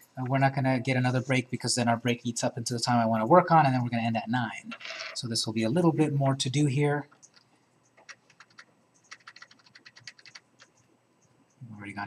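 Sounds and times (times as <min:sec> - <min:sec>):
keyboard keystrokes: 0:08.0 - 0:10.7.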